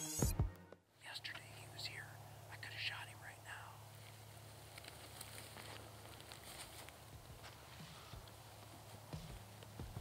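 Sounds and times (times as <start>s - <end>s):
man whispering: 1.0s - 3.9s.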